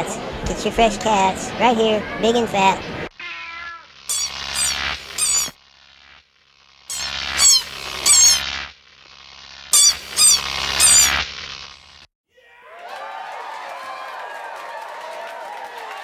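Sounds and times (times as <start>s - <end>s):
squeaky toy squeaking: 9.8s - 11.1s.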